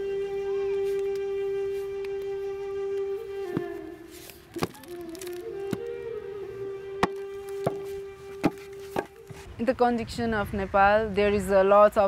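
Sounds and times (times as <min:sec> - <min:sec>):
brick mould knocking on ground: 0:07.0 - 0:09.1.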